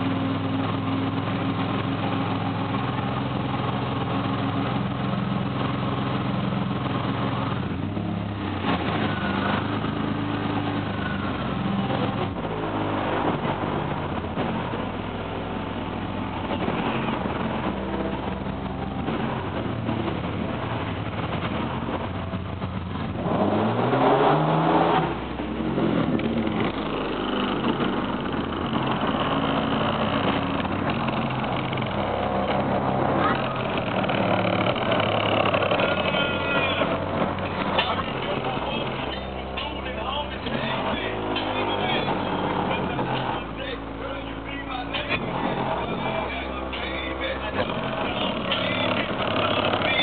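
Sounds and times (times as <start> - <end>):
car engine revving: 0.0 - 50.0.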